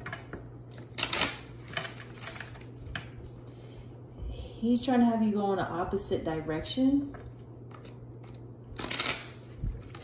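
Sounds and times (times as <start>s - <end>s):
cards shuffling flurry: 7.7s - 10.0s.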